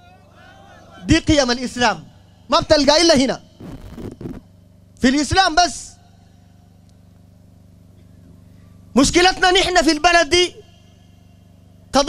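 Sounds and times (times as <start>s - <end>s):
low hum with buzz: 0.0s - 12.0s.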